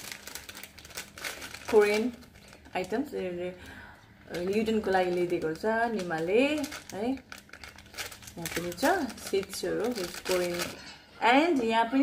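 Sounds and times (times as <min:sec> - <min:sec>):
plastic snack packets crackling: 0:00.0 - 0:10.8
woman talking: 0:01.6 - 0:03.7, 0:04.3 - 0:07.3, 0:08.4 - 0:12.0.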